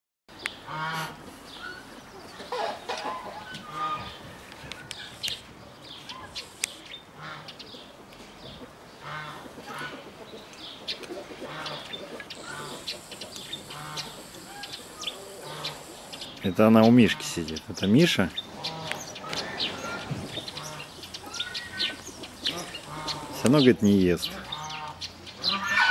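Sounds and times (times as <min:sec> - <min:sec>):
fowl calling: 0:11.1 - 0:16.3, 0:18.4 - 0:25.9.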